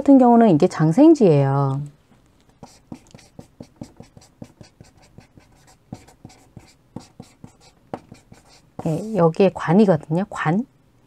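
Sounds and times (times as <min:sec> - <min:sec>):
chalk tapping and scratching: 0:02.5 - 0:09.4.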